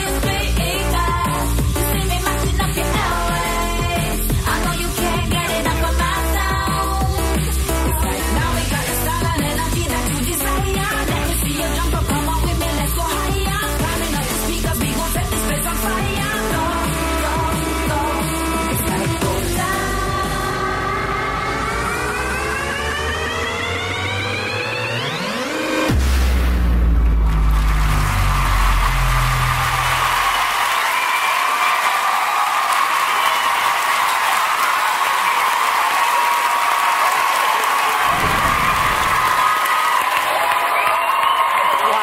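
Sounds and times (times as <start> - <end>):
electronic dance music: 0.0 - 42.0
deep bass hit: 25.9 - 29.8
audience applauding and cheering: 27.1 - 42.0.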